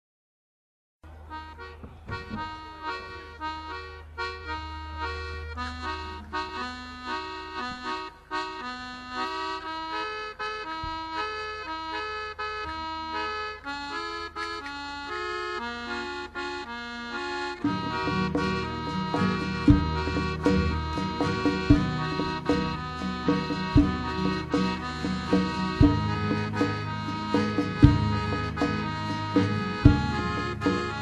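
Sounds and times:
accordion playing quick melody: 1.1 - 31.0
fuller accompaniment with low notes: 1.1 - 31.0.

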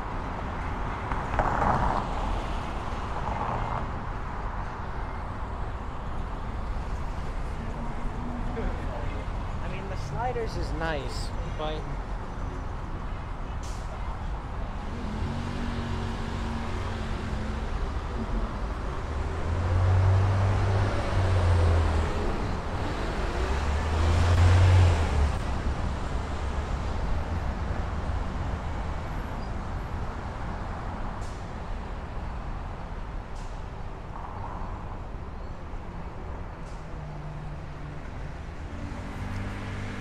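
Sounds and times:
street traffic rumble: 0.0 - 40.0
vehicles passing close by: 0.0 - 40.0.

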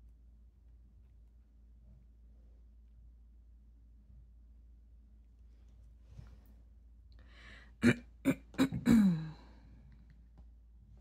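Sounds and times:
woman clearing her throat: 7.8 - 9.5.

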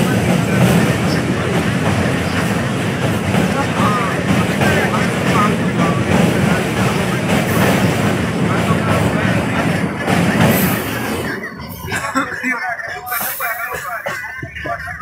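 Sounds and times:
faint voices: 0.0 - 15.0
train rumbling: 0.0 - 15.0.

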